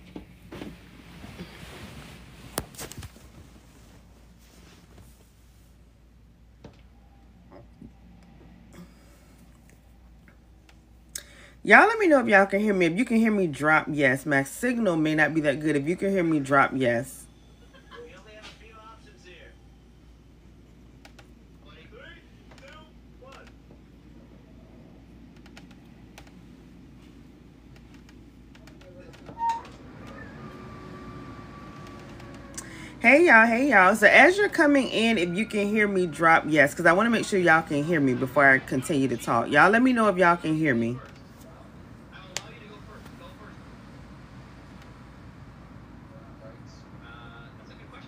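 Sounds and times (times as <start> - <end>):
low hum: 0.0 - 11.6
low steady hum: 0.0 - 48.0.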